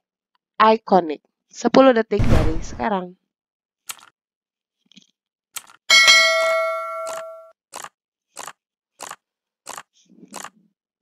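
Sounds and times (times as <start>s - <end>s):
bright bell ding: 5.9s - 7.5s
timer ticking: 6.7s - 9.8s.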